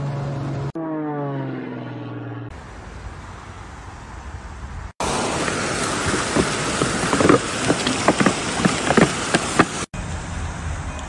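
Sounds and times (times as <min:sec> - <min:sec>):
propeller plane engine drone: 0:00.0 - 0:11.0.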